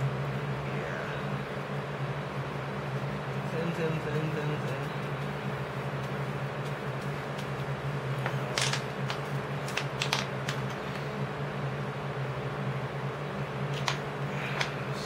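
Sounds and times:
low background hum: 0.0 - 15.0.

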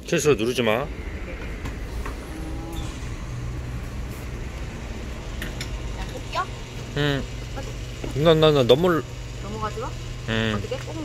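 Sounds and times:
low mechanical hum: 0.0 - 11.0
outdoor background noise: 0.0 - 11.0.

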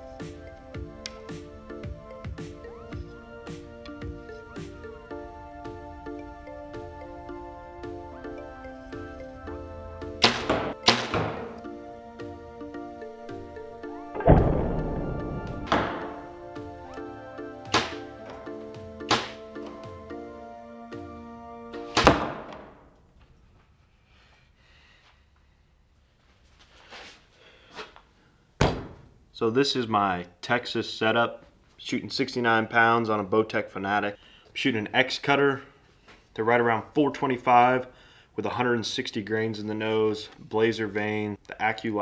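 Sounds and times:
background music: 0.0 - 22.8
bow shot cracks with hiss: 10.2 - 11.4, 17.7 - 18.1, 19.1 - 19.4, 21.9 - 22.7
thump on wooden counter: 15.6 - 16.2, 28.6 - 29.0.

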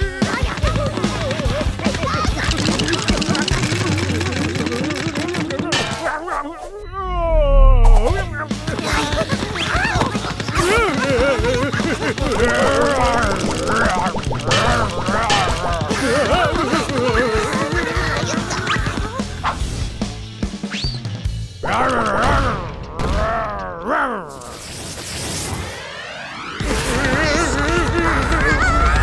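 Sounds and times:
cartoon music: 2.0 - 19.3
high wavering character vocalisations: 5.7 - 11.1, 12.3 - 19.3, 21.6 - 24.7.

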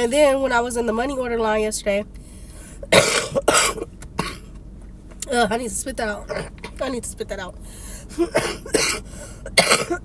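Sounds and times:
woman coughing harshly: 2.8 - 4.5, 8.2 - 10.0.

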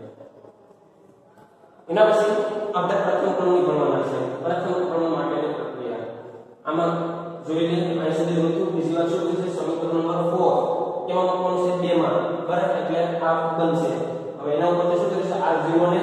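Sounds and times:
man lecturing: 1.8 - 6.0, 6.6 - 16.0.

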